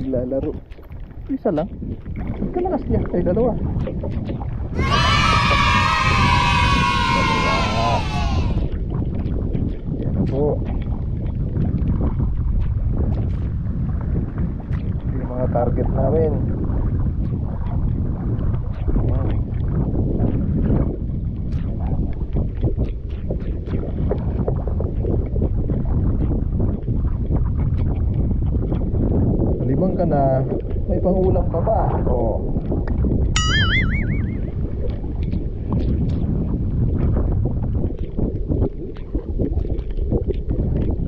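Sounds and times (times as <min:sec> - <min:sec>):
water splashes: 0:00.0 - 0:28.9, 0:32.2 - 0:41.0
wind buffeting microphone: 0:00.0 - 0:41.0.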